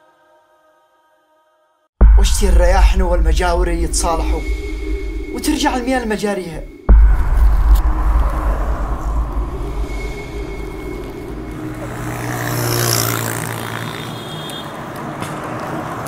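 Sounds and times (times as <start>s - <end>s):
road traffic rumble: 2.4s - 16.0s
vehicle passing: 2.6s - 16.0s.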